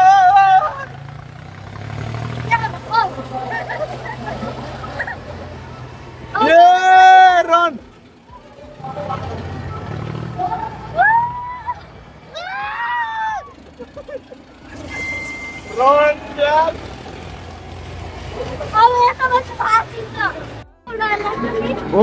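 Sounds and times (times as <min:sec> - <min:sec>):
man screaming in fright: 0:00.0 - 0:00.9, 0:06.4 - 0:07.6, 0:10.9 - 0:13.6
high yells: 0:00.0 - 0:01.1, 0:02.3 - 0:16.9.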